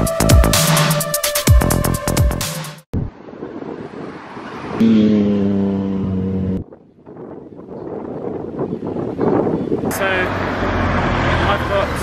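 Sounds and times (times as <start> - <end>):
road noise: 3.0 - 7.6, 8.4 - 12.0
vehicle engine droning: 3.8 - 6.6, 9.9 - 12.0.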